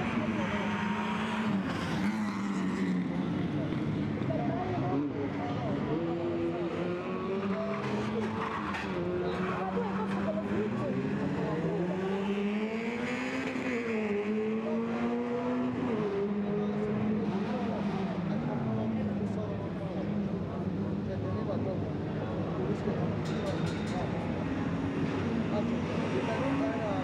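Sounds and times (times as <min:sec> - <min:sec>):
rally car engine revving: 0:00.0 - 0:21.1, 0:24.0 - 0:27.0.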